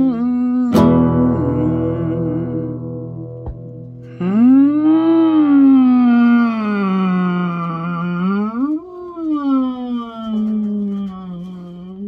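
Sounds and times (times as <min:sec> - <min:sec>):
man singing wordless note: 0:00.0 - 0:03.4, 0:04.1 - 0:08.8.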